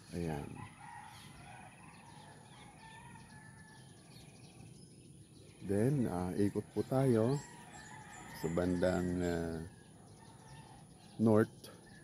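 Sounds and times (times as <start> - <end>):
small birds chirping: 0.0 - 12.0
distant rooster calls: 0.2 - 4.4, 6.5 - 11.2.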